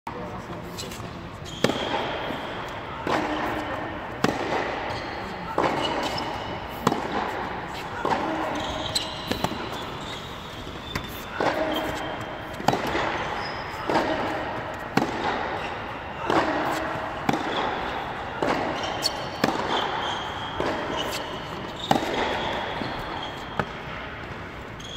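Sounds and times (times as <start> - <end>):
balls bouncing on hard court: 0.9 - 24.9
tennis balls struck by racket: 1.5 - 24.5.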